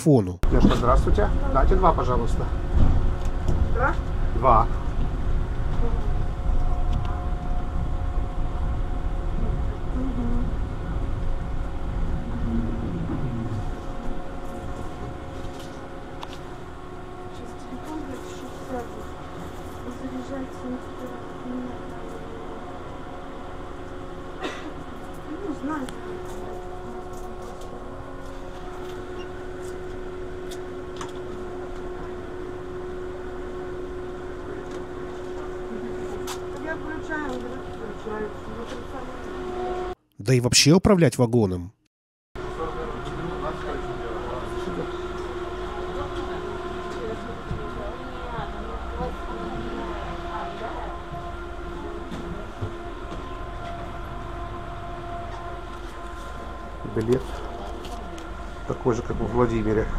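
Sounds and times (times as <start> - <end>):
tram rumble: 0.0 - 40.0, 42.4 - 59.9
electrical hum: 0.0 - 40.7, 42.4 - 59.9.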